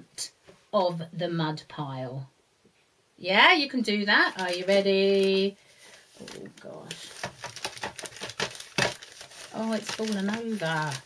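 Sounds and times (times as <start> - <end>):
paper rustle: 4.2 - 11.0.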